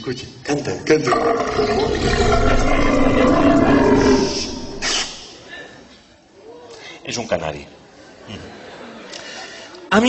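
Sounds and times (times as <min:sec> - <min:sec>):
long deep belch: 0:01.0 - 0:04.9.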